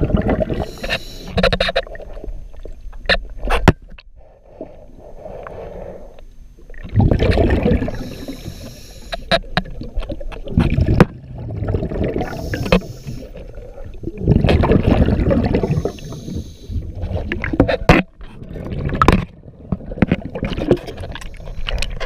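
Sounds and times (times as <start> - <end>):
bubbles rushing underwater: 0.0 - 0.7, 6.7 - 8.3, 9.6 - 17.6
regulator inhale hiss: 0.6 - 1.4, 4.2 - 6.3, 7.9 - 9.3, 12.2 - 13.4, 15.6 - 16.8
sharp clicks and knocks: 0.8 - 1.9.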